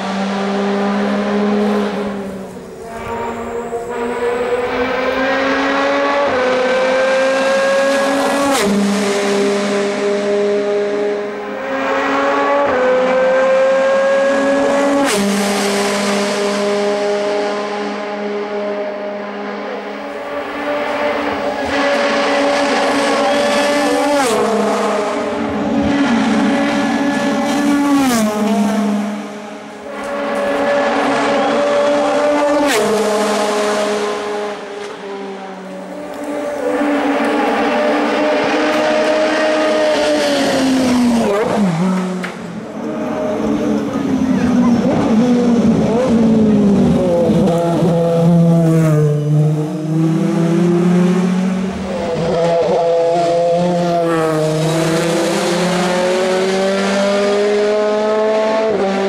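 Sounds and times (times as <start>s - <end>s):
race car engine at high revs: 0.0s - 59.0s.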